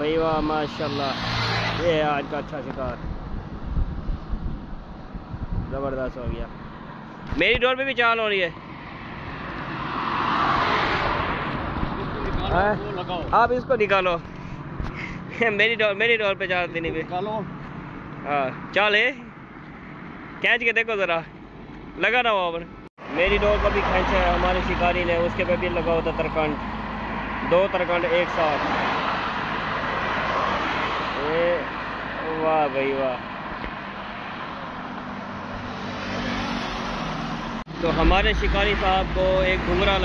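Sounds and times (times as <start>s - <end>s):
vehicle passing on bridge: 0.5s - 2.4s, 8.5s - 13.2s, 23.0s - 32.5s, 33.2s - 40.0s.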